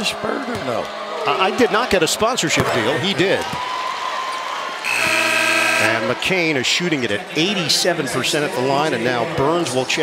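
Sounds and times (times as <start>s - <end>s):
arena crowd noise: 0.0s - 10.0s
arena horn blast: 4.9s - 6.1s.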